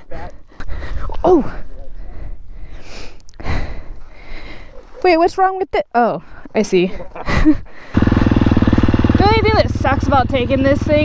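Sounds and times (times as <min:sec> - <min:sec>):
person breathing heavily: 0:00.0 - 0:04.9, 0:07.1 - 0:08.0.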